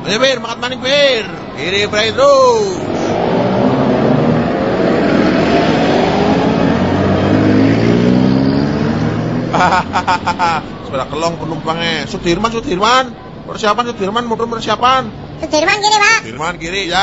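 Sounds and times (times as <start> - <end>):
vehicle engine speeding up: 1.4 - 10.8.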